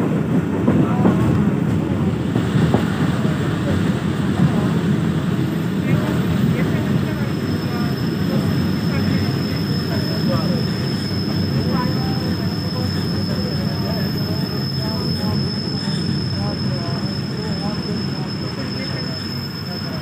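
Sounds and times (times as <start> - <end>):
train wheels rumbling: 0.0 - 20.0.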